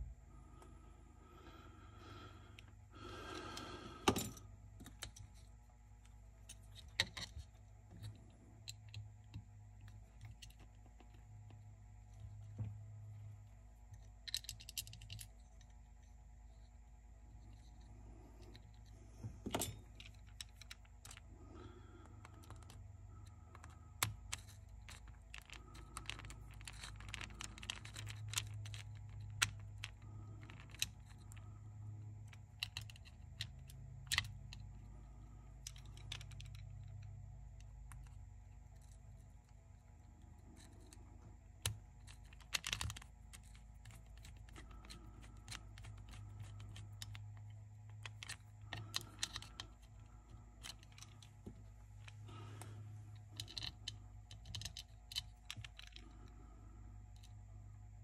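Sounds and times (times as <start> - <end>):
steady low hum: 0.0 - 58.0.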